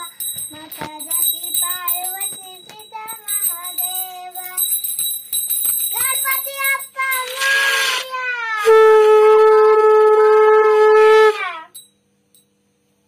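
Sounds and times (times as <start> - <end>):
conch shell blown: 7.3 - 8.0, 8.6 - 11.8.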